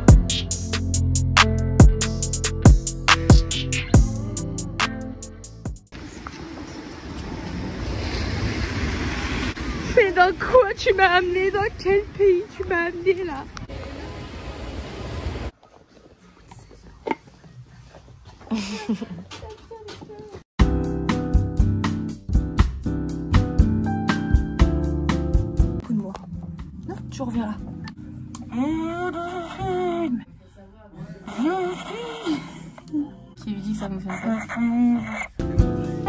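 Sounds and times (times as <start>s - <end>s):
street noise on wet pavement: 5.9s - 17.2s.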